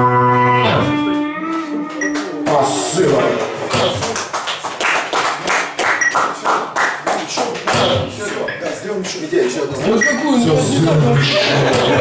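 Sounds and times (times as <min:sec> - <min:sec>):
audience clapping: 0:02.0 - 0:08.4.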